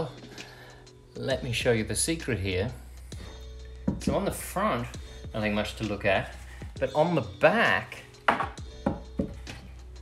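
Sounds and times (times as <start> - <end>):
plywood knocking against wood: 3.9 - 4.2, 8.3 - 9.6.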